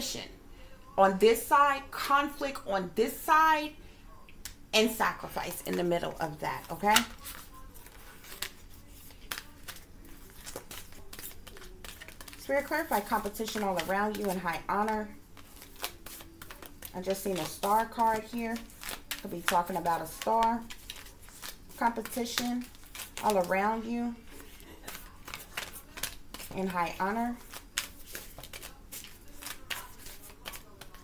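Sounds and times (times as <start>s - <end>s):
cards being shuffled: 5.3s - 31.0s.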